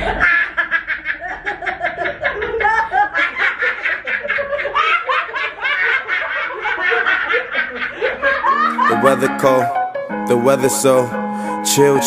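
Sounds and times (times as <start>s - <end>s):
people giggling: 0.0s - 9.7s.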